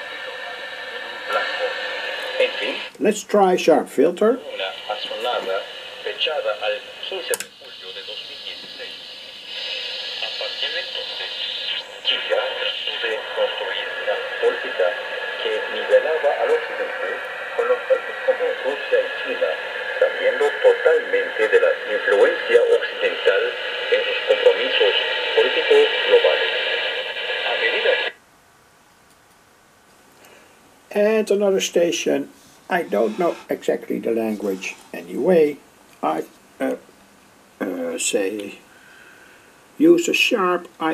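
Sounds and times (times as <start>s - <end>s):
radio noise: 0.0s - 28.2s, 30.9s - 36.8s, 37.6s - 38.7s
man speaking over radio loudspeaker: 1.0s - 28.1s, 30.9s - 36.8s, 39.8s - 40.9s
faint steady tones: 4.2s - 28.1s.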